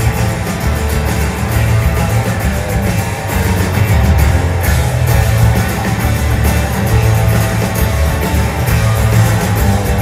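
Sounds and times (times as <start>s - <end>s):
drum kit: 0.0s - 10.0s
electric bass: 0.0s - 10.0s
strummed acoustic guitars: 0.0s - 10.0s.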